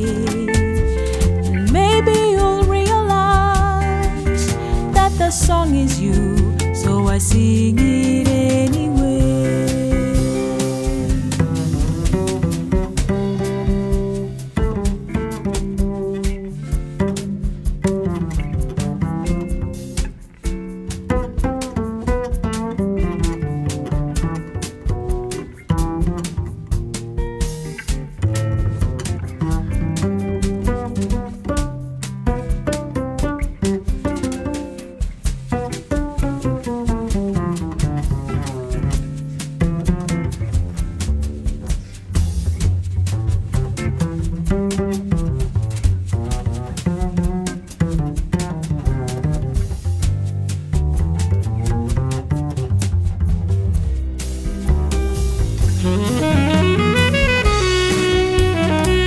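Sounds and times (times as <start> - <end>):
double bass: 0.0 - 59.0
instrumental jazz: 0.0 - 59.0
sharp percussive strikes: 54.4 - 59.0.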